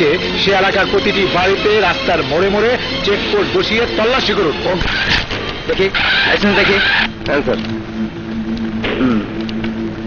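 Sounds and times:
voices: 0.0 - 9.6
steady low hum: 0.0 - 10.0.

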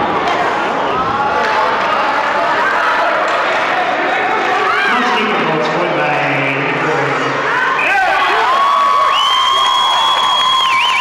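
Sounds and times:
spectators cheering and shouting: 0.0 - 11.0
man's voice: 4.8 - 7.4.

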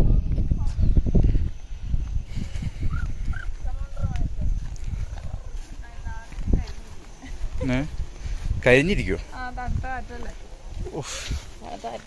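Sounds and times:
wind gusting on microphone: 0.0 - 12.0.

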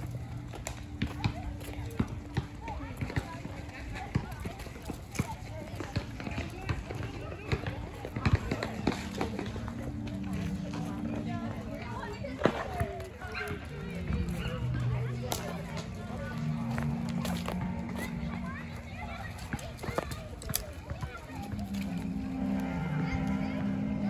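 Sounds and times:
people chattering outdoors: 0.0 - 24.0.

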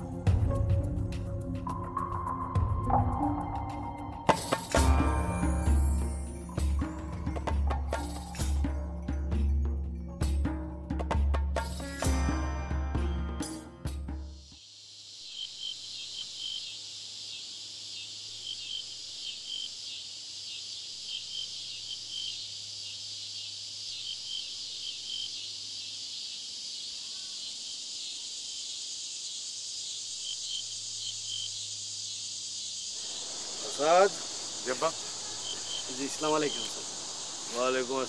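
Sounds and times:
crickets chirping: 0.0 - 10.8, 13.2 - 38.0.

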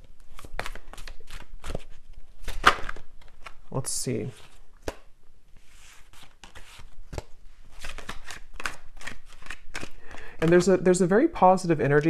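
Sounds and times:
cards being shuffled: 0.1 - 11.0.

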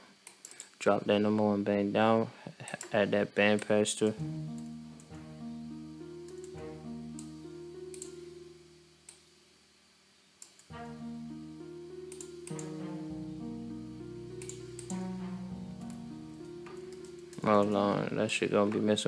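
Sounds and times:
orchestral strings slow melody: 4.1 - 9.5, 10.7 - 18.1.

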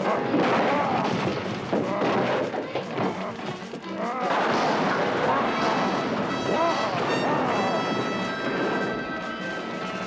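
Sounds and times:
crashing and rumbling: 0.0 - 10.0.

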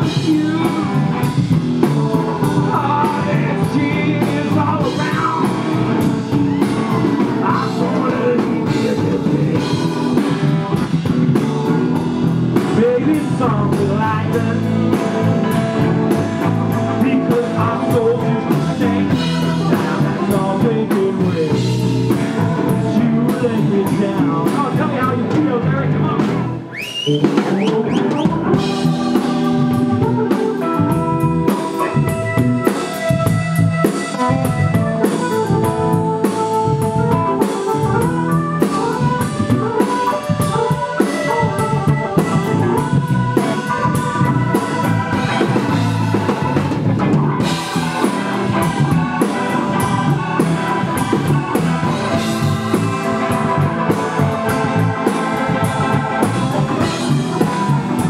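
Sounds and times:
keyboard lead: 0.0 - 58.0
live blues band playing: 0.0 - 58.0.

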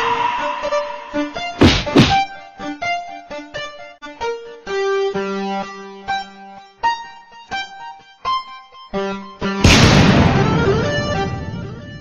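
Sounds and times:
sparse background music: 0.0 - 3.2
heavy whacks: 1.4 - 2.2.

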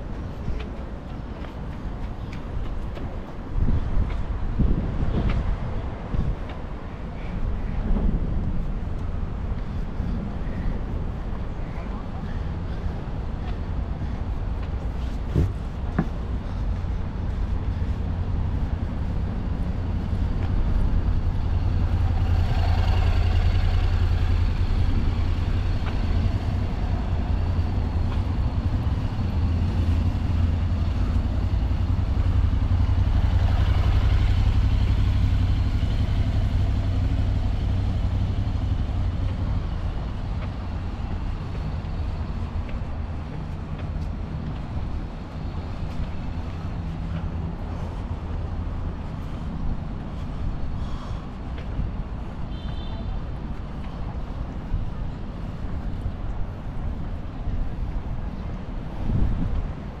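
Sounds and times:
steady low rumble: 0.0 - 60.0
motorcycle engine passing: 21.2 - 39.2.

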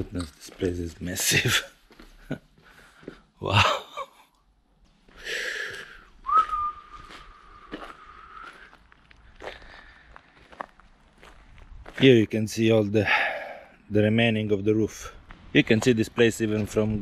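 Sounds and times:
footsteps on gravel: 0.0 - 3.4, 4.9 - 12.4
person whistling long note: 6.2 - 8.7.

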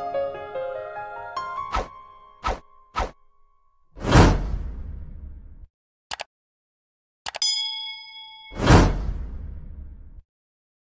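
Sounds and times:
whoosh: 4.0 - 5.7, 8.6 - 10.2
bell-like ding: 7.4 - 8.9.

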